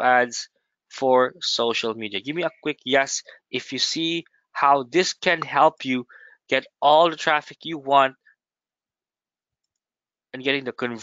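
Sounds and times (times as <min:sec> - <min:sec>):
man speaking: 0:00.0 - 0:00.4, 0:01.0 - 0:08.1, 0:10.4 - 0:11.0.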